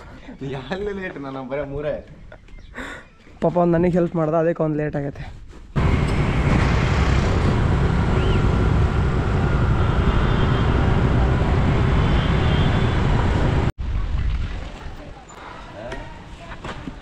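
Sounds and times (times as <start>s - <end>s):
cars passing: 5.8s - 13.7s
motor scooters: 5.8s - 13.7s.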